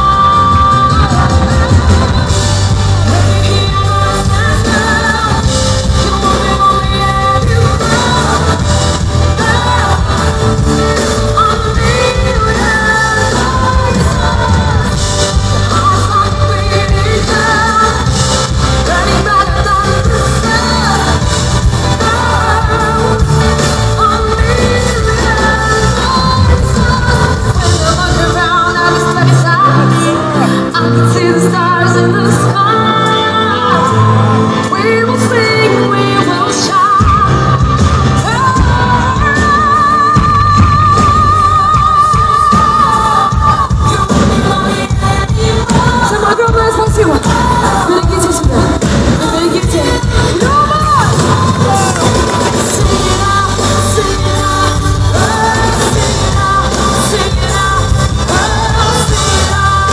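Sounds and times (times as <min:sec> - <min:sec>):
bass: 0:00.0 - 0:59.9
drums: 0:00.0 - 0:59.9
electric guitar: 0:00.0 - 0:59.9
woman singing: 0:00.0 - 0:59.9.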